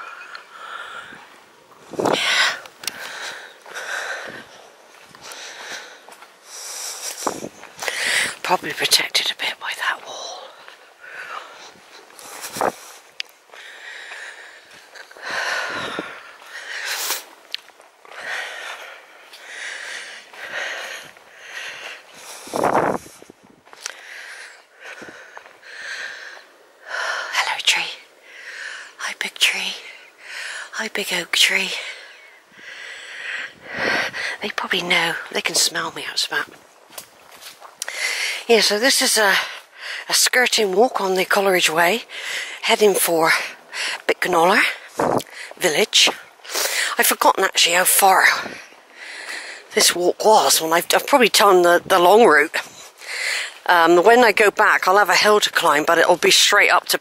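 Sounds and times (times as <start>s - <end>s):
woman whispering: 8.3s - 10.7s, 27.3s - 28.1s, 29.0s - 30.0s, 30.6s - 31.9s, 34.3s - 36.5s.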